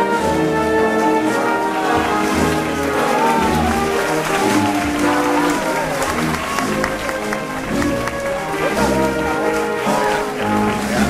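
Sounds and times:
band music with brass: 0.0s - 11.0s
crowd applauding: 0.0s - 11.0s.

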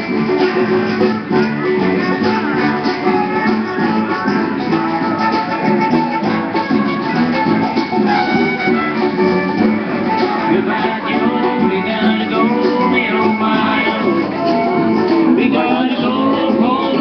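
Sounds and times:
live band music: 0.0s - 17.0s.

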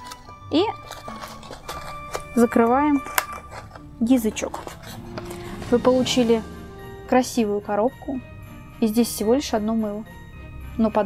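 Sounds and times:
background music: 0.0s - 11.0s
person speaking: 4.0s - 8.2s.

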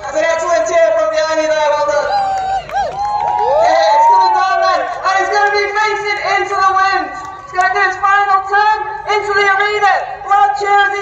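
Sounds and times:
man speaking over loudspeaker: 0.0s - 2.2s, 3.9s - 11.0s
crowd noise: 0.0s - 11.0s.

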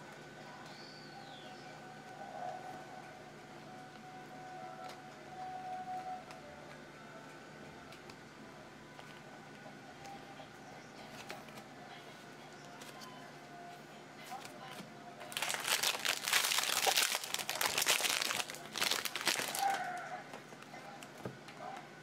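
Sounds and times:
foil wrapper tearing and crinkling: 15.3s - 20.1s.

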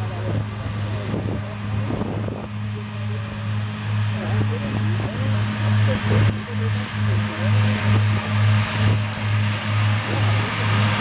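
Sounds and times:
mower whirring: 0.0s - 11.0s
tractor diesel engine droning: 0.0s - 11.0s.

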